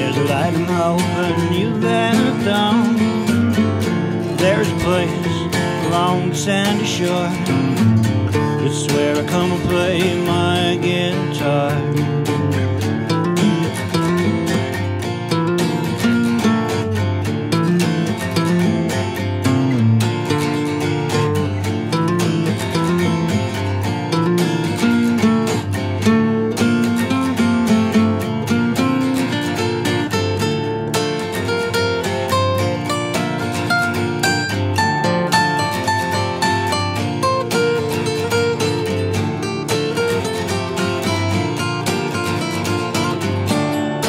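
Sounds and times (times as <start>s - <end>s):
two acoustic guitars playing: 0.0s - 44.0s.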